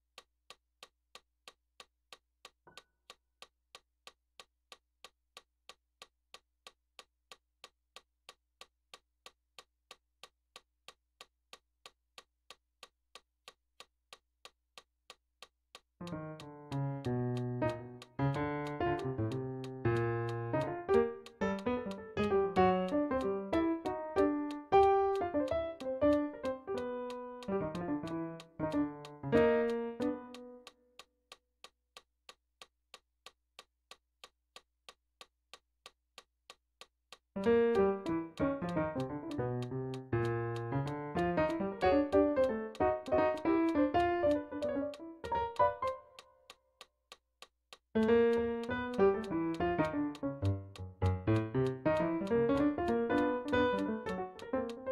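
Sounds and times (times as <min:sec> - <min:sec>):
metronome clicking: 0:00.2 - 0:31.7, 0:35.8 - 0:54.9.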